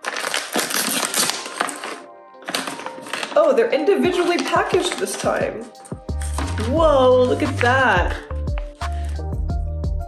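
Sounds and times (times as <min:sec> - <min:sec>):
plastic snack bag crinkling: 0:00.0 - 0:07.7, 0:08.6 - 0:09.2
background music: 0:00.0 - 0:10.0.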